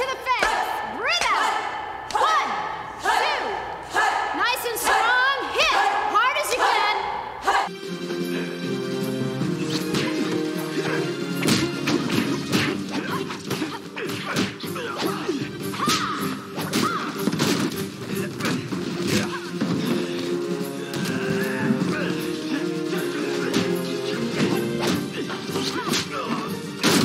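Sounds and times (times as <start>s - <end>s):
background music: 0.0s - 27.0s.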